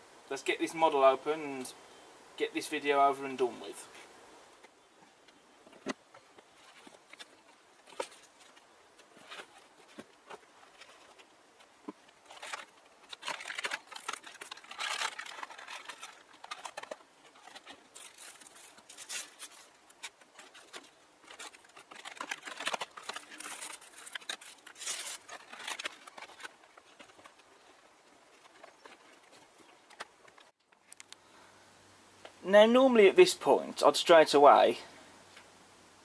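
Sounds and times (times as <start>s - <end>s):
plastic packaging crinkling: 5.8s - 31.1s.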